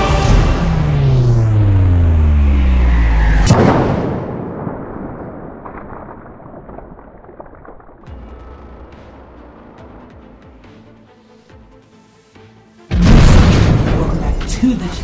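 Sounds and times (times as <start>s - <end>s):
booming hit: 0.1s - 9.4s, 12.9s - 14.4s
low tones sliding downward: 0.4s - 5.6s.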